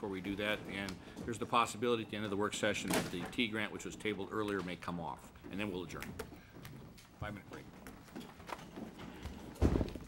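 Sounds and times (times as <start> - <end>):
knocks and rustles at desk: 5.5 - 10.0.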